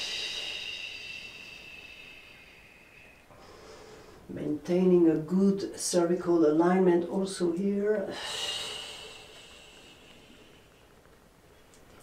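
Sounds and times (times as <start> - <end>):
woman exhaling breathily: 0.0 - 4.3, 8.1 - 10.7.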